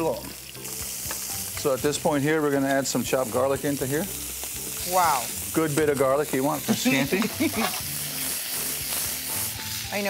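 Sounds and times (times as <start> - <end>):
shrimp sizzling in a frying pan: 0.0 - 10.0.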